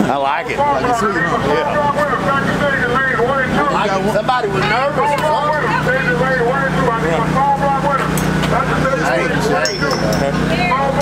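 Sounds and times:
low mechanical hum: 0.0s - 11.0s
people talking: 0.0s - 11.0s.

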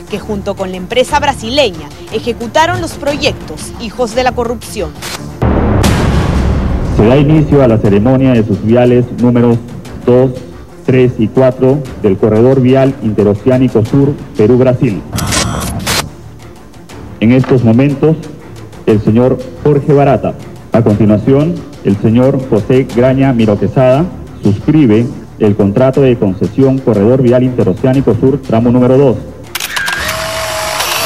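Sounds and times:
background music: 0.0s - 31.0s
camera shutters clicking rapidly: 29.5s - 31.0s
bright bursts of noise: 29.6s - 31.0s.

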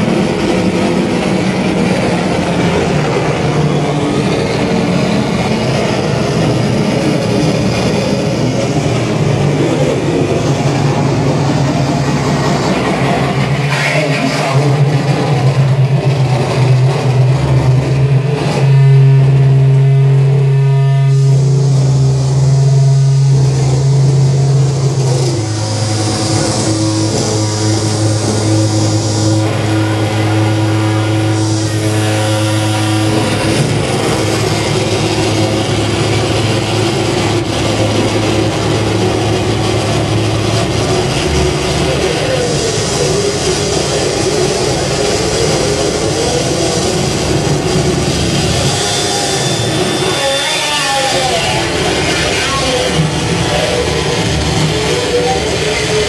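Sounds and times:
harsh noise music: 0.0s - 56.0s
sustained low drone: 0.0s - 56.0s.

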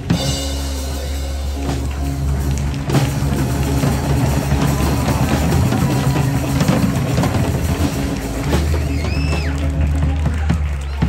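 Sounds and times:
drum kit: 0.0s - 11.0s
live rock band playing: 0.0s - 11.0s.

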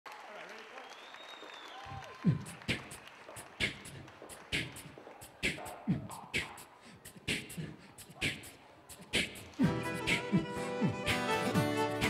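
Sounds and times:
audience applauding: 0.0s - 5.9s, 9.3s - 12.0s.

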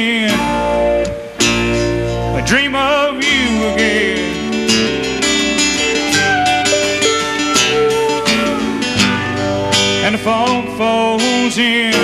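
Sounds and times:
country-rock band playing: 0.0s - 12.0s
strummed acoustic guitar: 0.0s - 12.0s.

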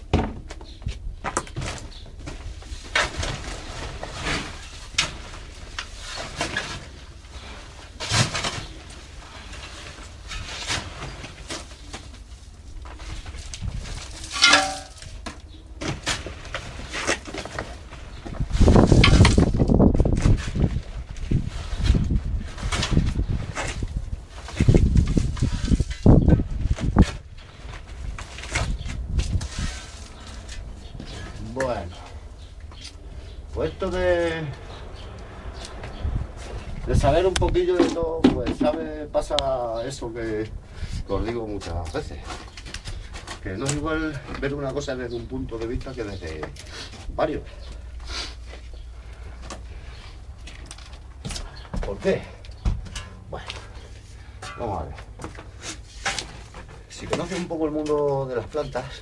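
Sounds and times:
hand shovel digging soil: 28.2s - 31.9s.

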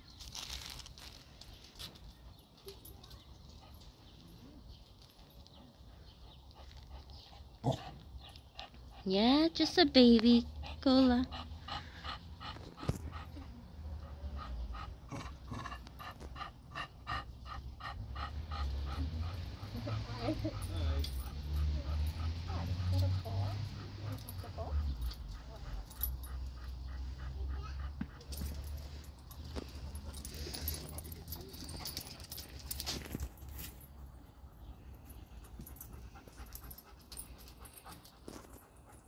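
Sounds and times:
dogs playing: 0.4s - 39.0s.

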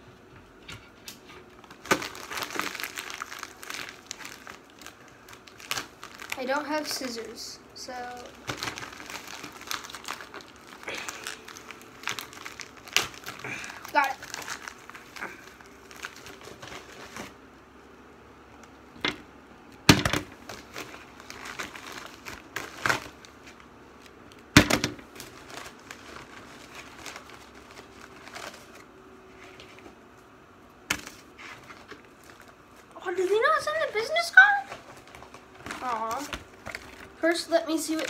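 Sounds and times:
packaging crinkling and rustling: 0.7s - 17.5s, 19.9s - 38.0s.

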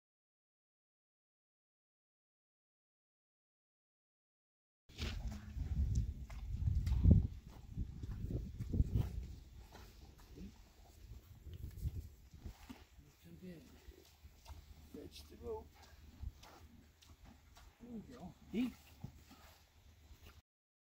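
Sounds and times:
horse moving on dirt: 4.9s - 20.4s.

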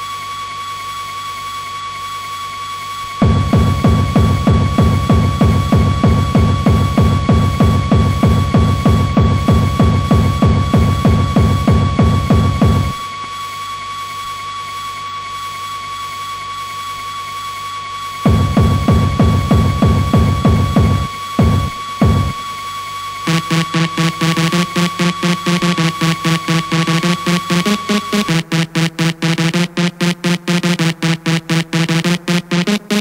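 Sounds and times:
fast-pulsing buzz: 3.2s - 13.2s, 18.3s - 22.5s, 23.2s - 33.0s
high electronic tone: 23.3s - 33.0s.

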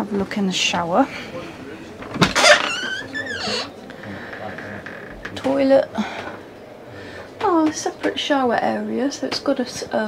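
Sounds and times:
door squeaking: 2.2s - 5.4s.

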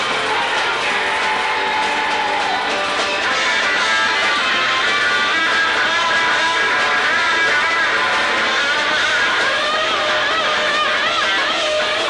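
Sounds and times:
distorted electric guitar drone: 0.0s - 12.0s.

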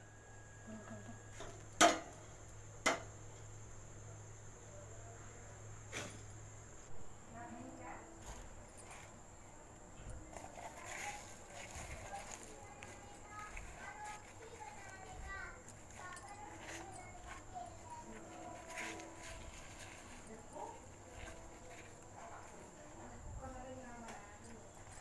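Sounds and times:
steady high-pitched whine: 0.0s - 25.0s
faint voices talking: 7.3s - 25.0s.

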